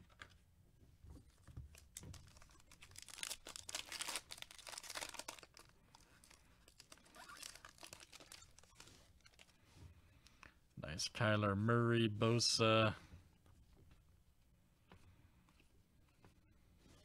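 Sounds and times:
foil wrapper crinkling: 1.7s - 9.6s
foil wrapper tearing: 1.8s - 9.5s.

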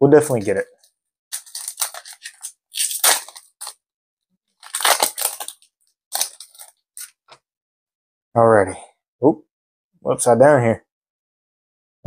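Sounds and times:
foil wrapper crinkling and tearing: 1.3s - 3.8s, 4.6s - 7.3s.

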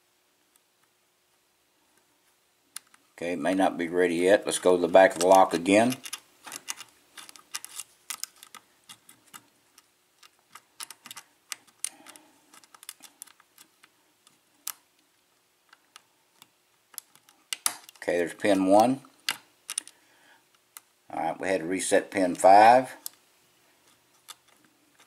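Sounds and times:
lock pick metallic clicks: 5.1s - 14.9s, 15.7s - 18.0s, 18.8s - 20.9s.

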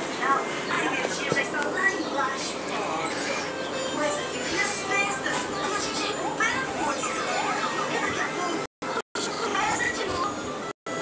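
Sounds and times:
high-pitched voices calling: 0.0s - 10.7s.

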